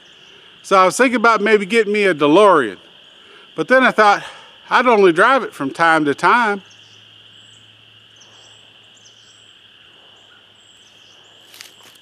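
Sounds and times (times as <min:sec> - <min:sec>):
high-pitched chirring chorus: 0:00.0 - 0:12.0
bird chirps: 0:06.6 - 0:12.0.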